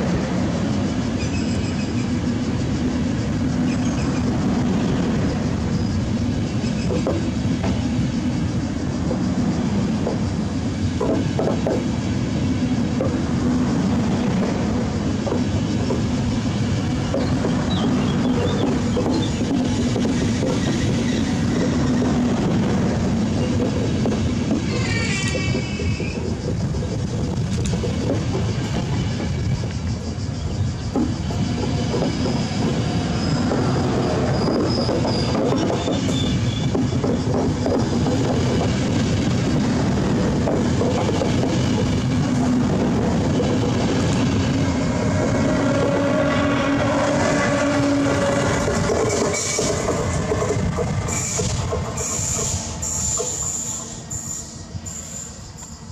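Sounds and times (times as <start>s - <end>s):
train rumbling past: 0.0s - 55.9s
wheels clicking over rail joints: 0.0s - 55.9s.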